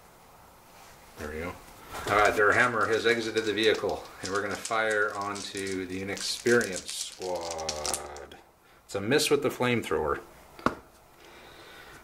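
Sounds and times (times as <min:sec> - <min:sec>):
man's voice: 0:02.1 - 0:08.4.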